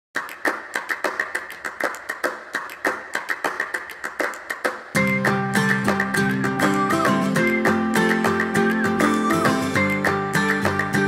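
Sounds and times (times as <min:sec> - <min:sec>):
percussive pop backing track: 0:00.3 - 0:11.0.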